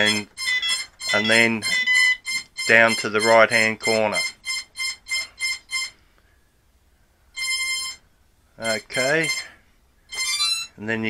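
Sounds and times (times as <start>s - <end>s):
electronic transmitter beeps: 0.0s - 6.0s, 7.4s - 8.0s, 8.6s - 10.8s.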